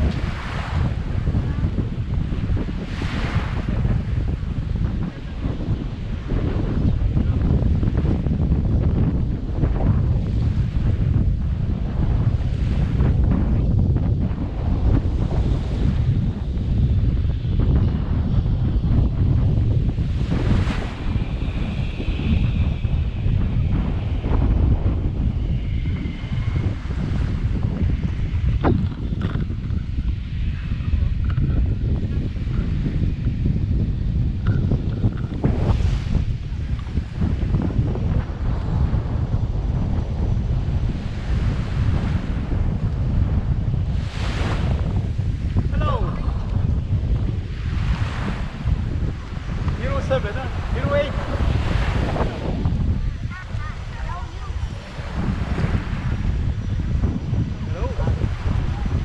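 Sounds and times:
small waves washing on sand: 0.0s - 31.4s, 32.1s - 59.0s
wind buffeting microphone: 0.0s - 59.0s.

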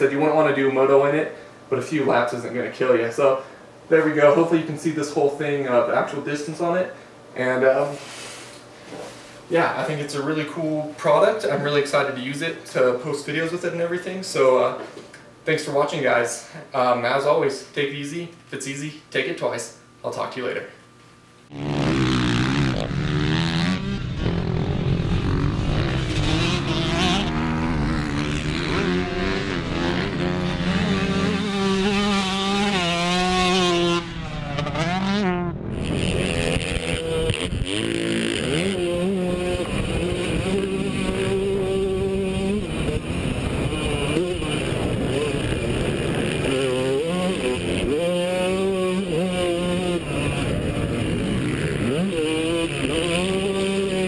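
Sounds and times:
dirt bike engine revving: 21.5s - 54.0s.

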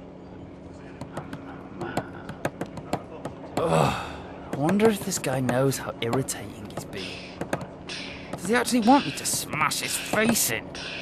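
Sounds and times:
train carriage hum: 0.0s - 11.0s.

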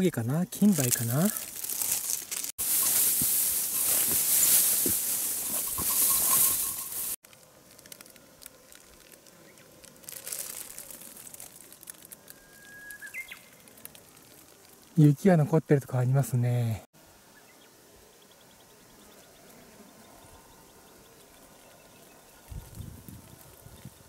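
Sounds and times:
faint outdoor background: 0.0s - 24.0s
rustling undergrowth against microphone: 0.0s - 24.0s
bird whistled call: 12.3s - 13.6s.

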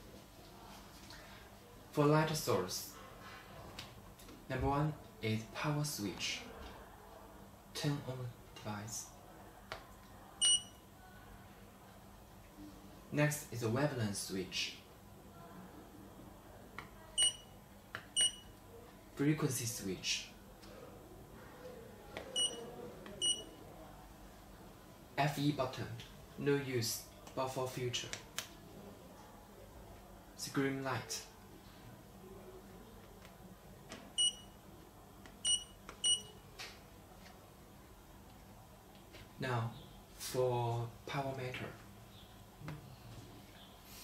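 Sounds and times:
high electronic key beeps: 10.4s - 10.8s, 17.2s - 17.5s, 18.1s - 18.5s, 22.4s - 22.6s, 23.2s - 23.6s, 35.4s - 36.4s
high electronic beeps: 17.2s - 17.4s.

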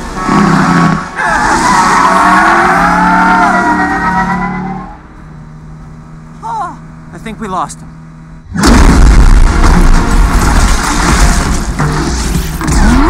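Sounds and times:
car tyres squealing: 0.2s - 5.1s
low hum: 2.8s - 13.0s.

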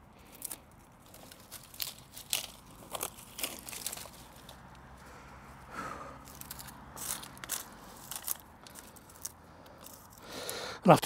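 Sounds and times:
dry stems crackling and snapping: 0.0s - 11.0s.

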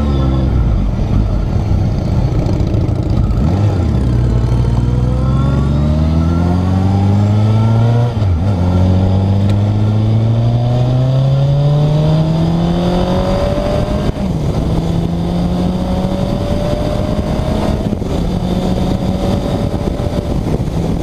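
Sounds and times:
motorcycle engine accelerating: 0.0s - 21.0s.

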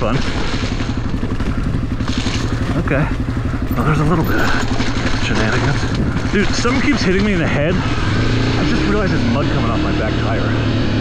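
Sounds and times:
dirt bike engine running: 0.0s - 11.0s.

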